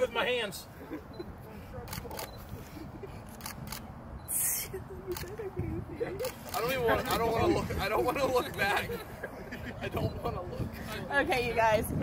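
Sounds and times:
camera shutter clicks: 3.3s - 3.9s.

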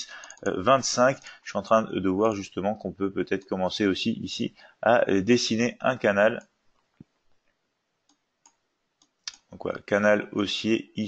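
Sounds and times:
computer mouse clicks: 0.2s - 0.5s, 8.1s - 9.5s.

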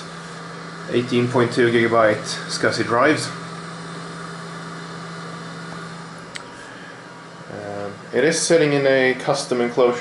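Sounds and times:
server fans whirring: 0.0s - 10.0s.

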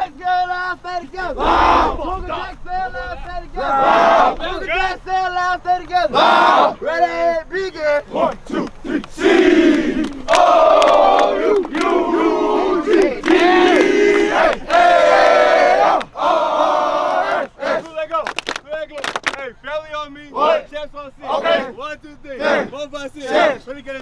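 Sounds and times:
group shouting a chant: 1.1s - 5.0s, 6.0s - 17.9s, 20.4s - 21.8s, 22.4s - 23.6s.

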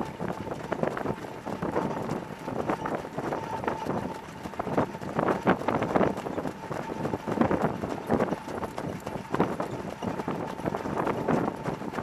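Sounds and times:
hoofbeats on dirt track: 0.0s - 12.0s.

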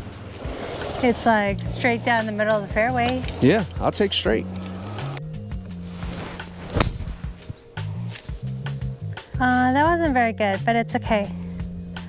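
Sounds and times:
background music: 0.0s - 12.0s
golf club striking ball: 6.5s - 8.3s.

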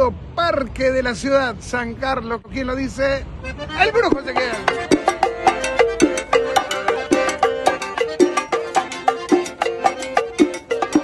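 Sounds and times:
button accordion melody: 3.4s - 11.0s
hand percussion: 3.9s - 11.0s
scraped guiro: 3.9s - 11.0s.

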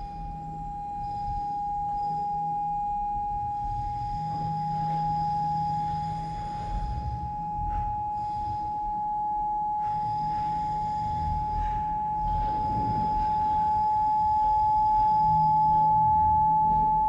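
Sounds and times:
steady pure tone: 0.0s - 17.0s
low rumble: 9.9s - 17.0s.

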